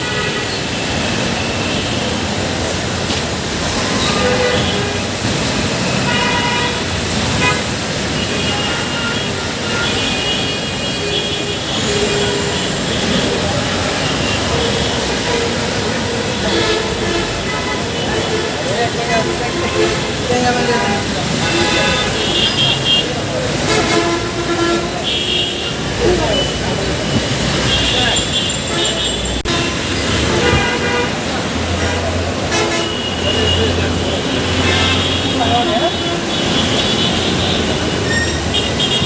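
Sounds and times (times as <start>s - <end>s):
traffic hum: 0.0s - 39.0s
vehicle horns tooting: 3.8s - 39.0s
people's voices: 11.7s - 38.1s.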